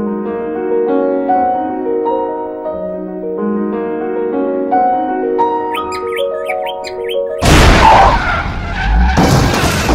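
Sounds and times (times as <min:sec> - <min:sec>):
cockatiel chirping: 0:05.8 - 0:07.4
car skidding and crashing: 0:07.4 - 0:09.9.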